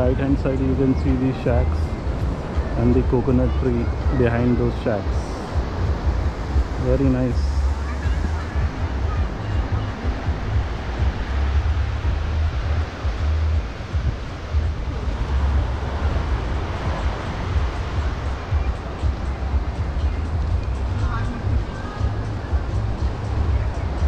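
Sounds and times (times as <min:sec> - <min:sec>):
surf breaking on shore: 0:00.0 - 0:24.0
wind buffeting microphone: 0:00.0 - 0:24.0.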